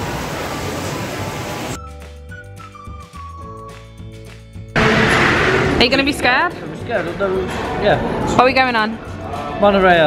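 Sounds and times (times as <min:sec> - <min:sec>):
fountain water splashing: 0:00.0 - 0:01.8
music: 0:01.8 - 0:10.0.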